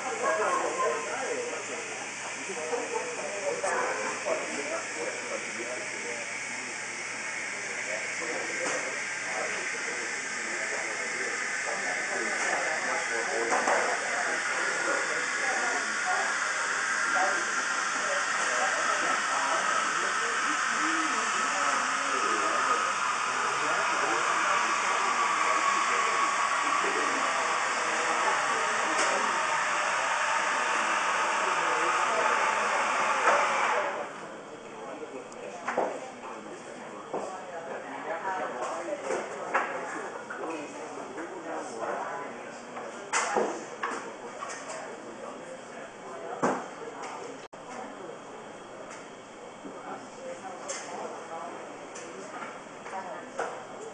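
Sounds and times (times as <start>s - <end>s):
murmured voices: 0.0s - 53.9s.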